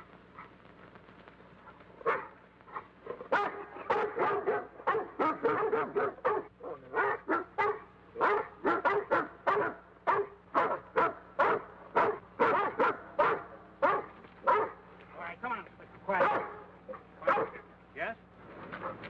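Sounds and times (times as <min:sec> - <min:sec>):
dogs barking: 0:00.3 - 0:00.6, 0:01.6 - 0:15.0, 0:16.0 - 0:17.8, 0:18.7 - 0:19.0.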